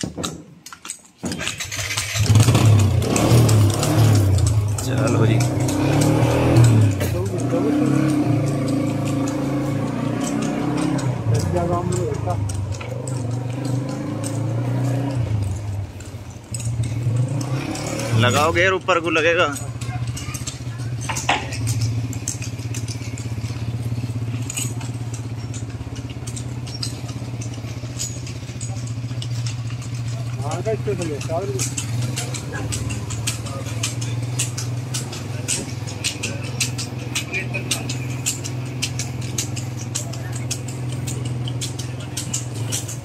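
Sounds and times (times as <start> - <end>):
clicking and rattling: 0.0 - 43.0
motorcycle engine running: 1.2 - 43.0.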